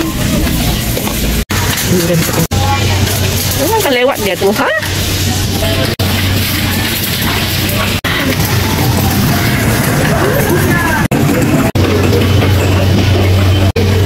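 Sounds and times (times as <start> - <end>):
indistinct voices: 0.0 - 14.0.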